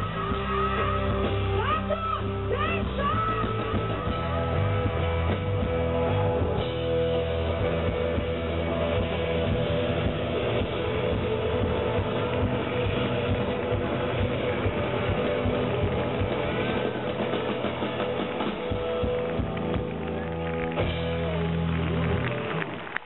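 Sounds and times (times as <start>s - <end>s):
live rock band playing: 0.0s - 23.0s.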